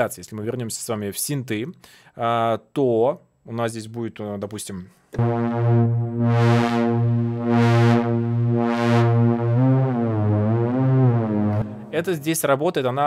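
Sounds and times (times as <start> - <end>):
synthesizer low held note: 5.2 - 12.4.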